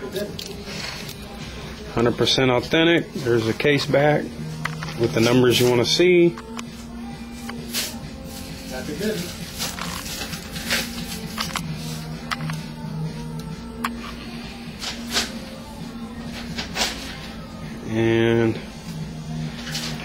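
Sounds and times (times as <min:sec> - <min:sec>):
steady low hum: 0:09.4 - 0:20.0.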